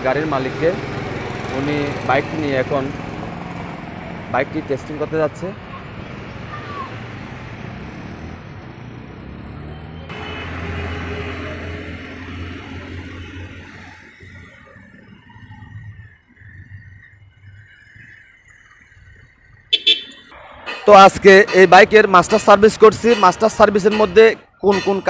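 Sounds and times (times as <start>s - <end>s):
street traffic: 0.0s - 25.0s.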